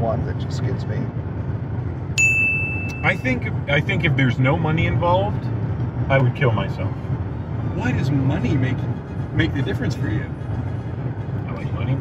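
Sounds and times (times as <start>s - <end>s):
car cabin road noise: 0.0s - 12.0s
bright ding: 2.2s - 3.2s.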